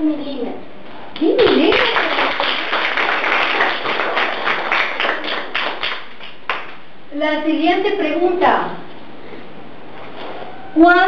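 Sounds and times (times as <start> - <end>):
group clapping: 1.1 - 6.9, 8.0 - 8.4.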